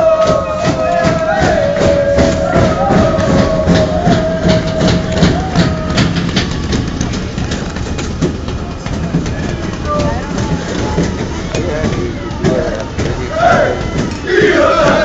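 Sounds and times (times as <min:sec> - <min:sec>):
crowd chanting: 0:00.0 - 0:06.9, 0:09.9 - 0:15.0
knocks: 0:00.0 - 0:15.0
low vehicle rumble: 0:00.0 - 0:15.0.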